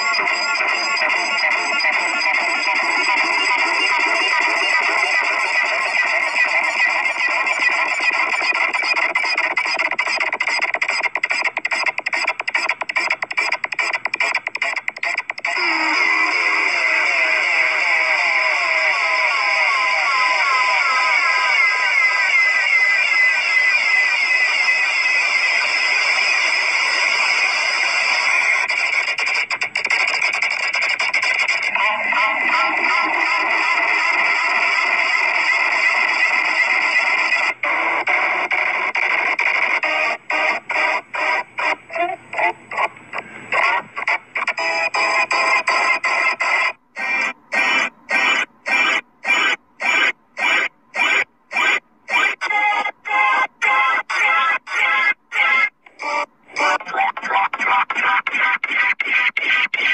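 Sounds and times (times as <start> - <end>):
distorted squealing logo audio: 18.9 - 28.5, 47.0 - 56.8.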